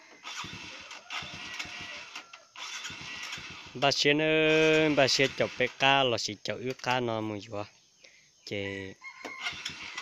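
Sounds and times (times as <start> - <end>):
motorbike engine cranking: 0.1 - 7.0, 9.4 - 10.0.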